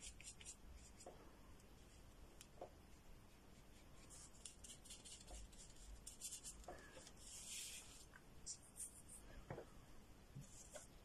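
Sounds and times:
paintbrush on paper: 0.0s - 1.2s, 2.7s - 9.3s, 10.4s - 11.0s.

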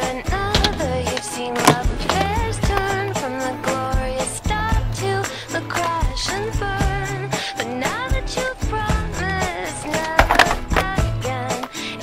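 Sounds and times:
pop song with singing: 0.0s - 12.0s
skateboard rolling on concrete: 0.0s - 12.0s
skateboard clack: 0.3s - 3.8s, 9.8s - 11.6s.

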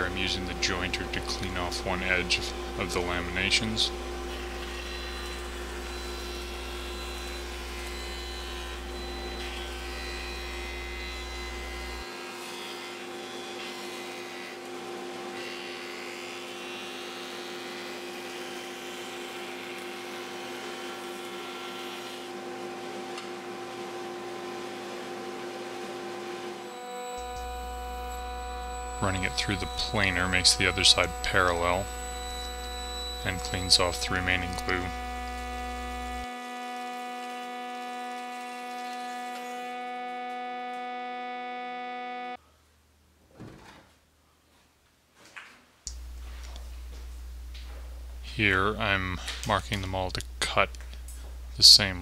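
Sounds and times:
jointer motor humming: 0.0s - 12.1s, 26.5s - 42.4s.

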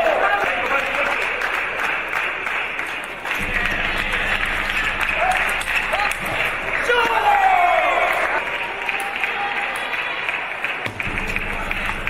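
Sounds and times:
crowd clapping: 0.0s - 12.0s
people shouting: 5.0s - 10.2s.

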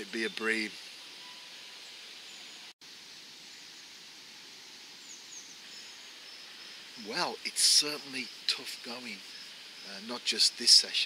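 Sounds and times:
faint high bird chirps: 0.0s - 2.7s
steady outdoor hiss: 0.0s - 11.0s.

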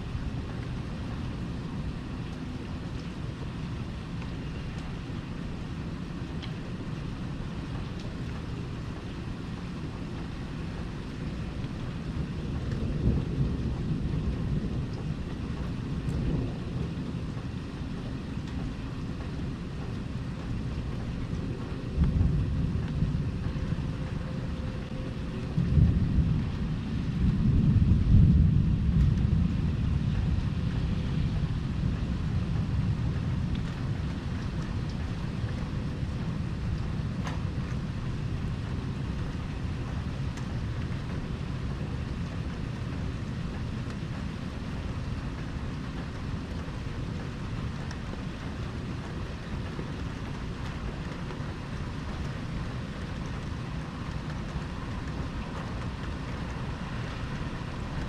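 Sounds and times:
steady rain: 0.0s - 58.0s
rolling thunder: 10.6s - 58.0s.

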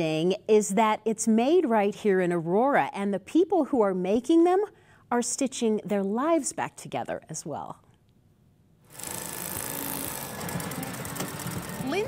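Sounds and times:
sewing machine running: 8.9s - 12.0s.

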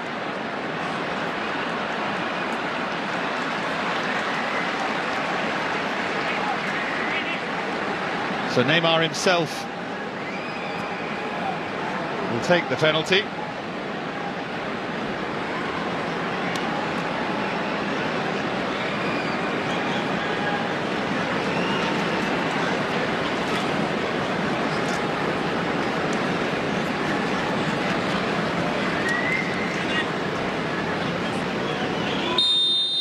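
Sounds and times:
stadium crowd cheering: 0.0s - 33.0s
short high whistle: 32.3s - 33.0s.

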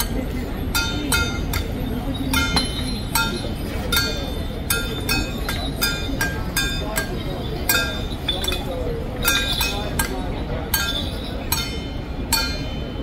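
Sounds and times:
metal percussion clinking: 0.0s - 13.0s
voices: 0.0s - 13.0s.

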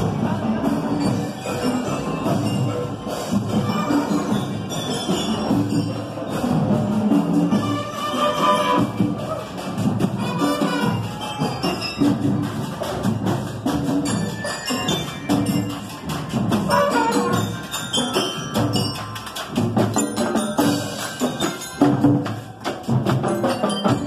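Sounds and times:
snare drums: 0.0s - 24.0s
tenor drums: 0.0s - 24.0s
bugles playing: 16.7s - 17.5s.

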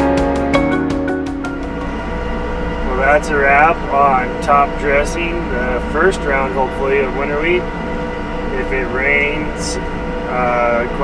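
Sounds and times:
engine drone inside cab: 0.0s - 11.0s
road noise: 0.0s - 11.0s
man talking: 2.9s - 7.7s, 8.5s - 11.0s.

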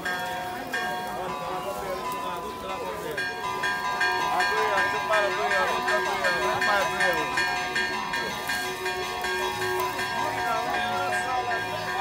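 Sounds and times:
music with held tones: 0.0s - 12.0s
people talking at once: 0.0s - 12.0s.

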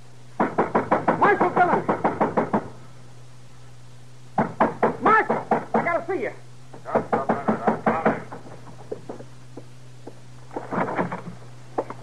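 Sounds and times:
low steady hum: 0.0s - 12.0s
pounding on wooden door: 0.4s - 2.7s, 4.4s - 5.9s, 6.8s - 8.7s.

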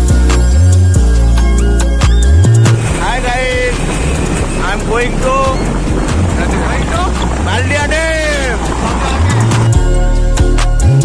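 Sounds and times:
music with bass line: 0.0s - 11.0s
wind and road noise: 0.0s - 11.0s
men calling out excitedly: 2.9s - 9.8s.

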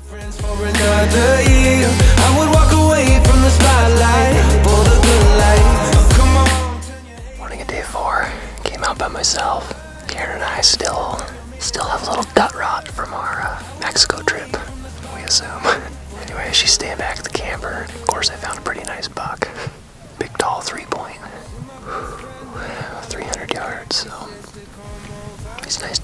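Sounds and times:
soft background music: 0.0s - 26.0s
man whispering: 7.4s - 26.0s.

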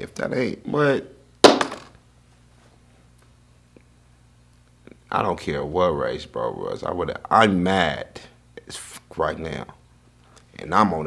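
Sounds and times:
loud smack: 1.4s - 1.9s.

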